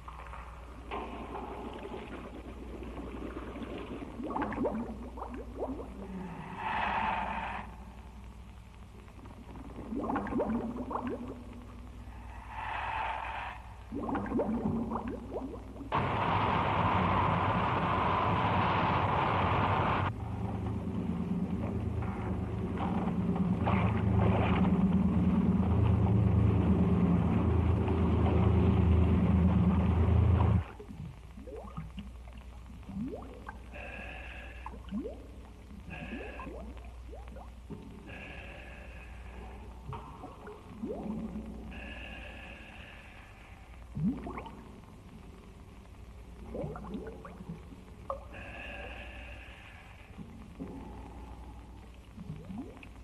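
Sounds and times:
underwater bubbling: 0:00.0 - 0:16.0, 0:20.1 - 0:53.0
boat engine hum: 0:19.4 - 0:30.7.

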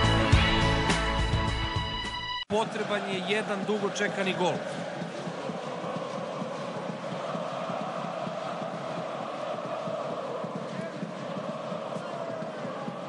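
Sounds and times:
crowd noise: 0:02.5 - 0:13.0.

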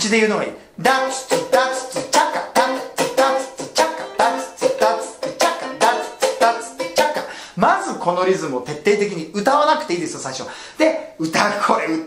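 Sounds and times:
ukulele strummed with muted chops: 0:01.0 - 0:07.3.

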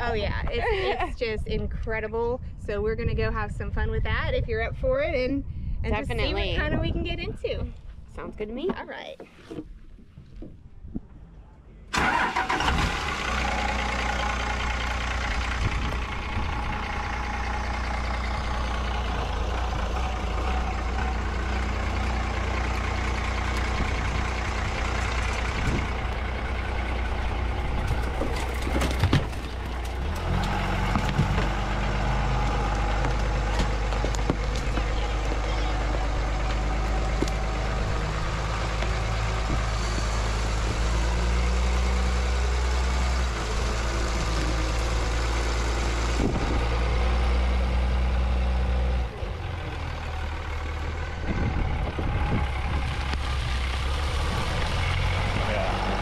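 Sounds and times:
swamp buggy engine running: 0:11.9 - 0:56.0.

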